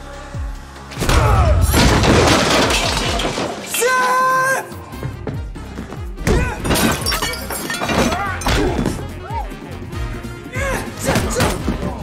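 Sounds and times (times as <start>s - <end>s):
glass breaking and clattering: 1.7s - 4.2s, 6.6s - 9.0s
man shouting: 3.7s - 4.8s, 8.1s - 9.6s, 10.4s - 12.0s.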